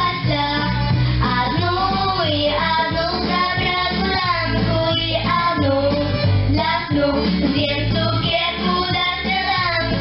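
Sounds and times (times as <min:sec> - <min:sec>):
girls singing: 0:00.0 - 0:10.0.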